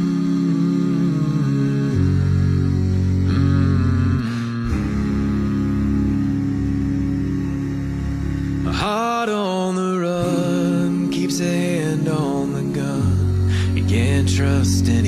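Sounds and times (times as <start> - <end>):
a cappella vocal harmony: 0.0 - 15.0.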